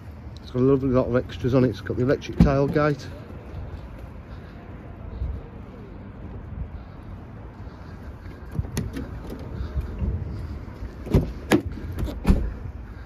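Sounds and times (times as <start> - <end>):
wind and handling rumble: 0.0 - 13.0
car door opening clicks: 8.5 - 9.5, 11.0 - 12.6.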